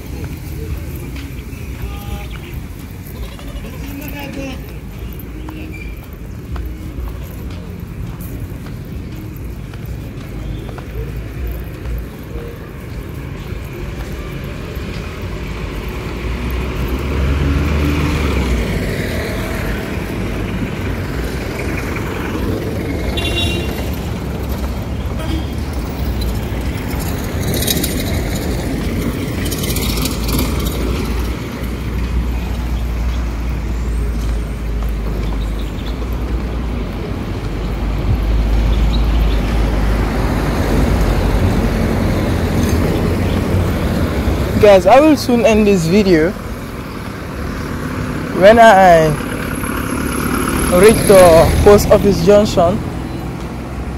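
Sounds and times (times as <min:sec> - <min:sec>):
vehicles passing on road: 0:00.0 - 0:53.9.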